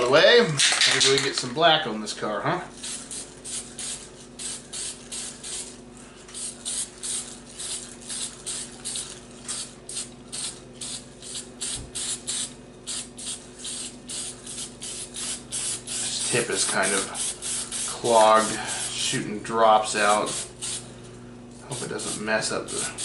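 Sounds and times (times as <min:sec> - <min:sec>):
spray can hissing in bursts: 0:02.8 - 0:19.0, 0:20.0 - 0:20.9, 0:21.7 - 0:23.0.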